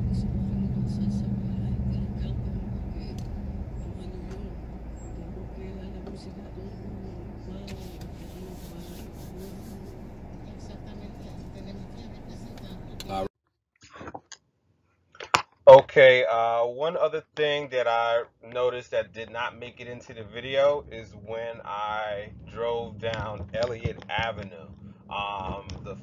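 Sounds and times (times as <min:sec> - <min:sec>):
car engine idling: 0:00.0 - 0:13.3, 0:19.8 - 0:26.0.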